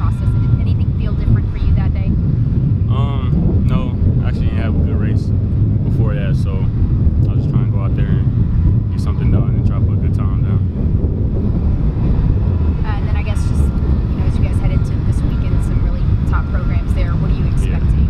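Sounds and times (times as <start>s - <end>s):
steady low rumble: 0.0s - 18.0s
young man speaking: 2.9s - 8.3s, 8.9s - 10.7s.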